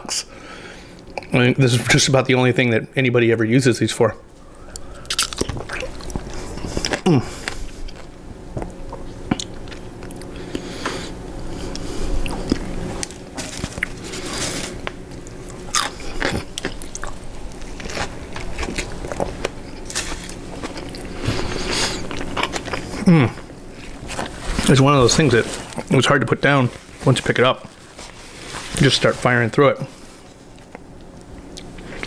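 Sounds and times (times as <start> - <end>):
person chewing food: 4.5 - 24.6, 30.4 - 32.0
crunching toppings: 4.5 - 32.0
person humming: 7.0 - 7.5, 23.0 - 23.4.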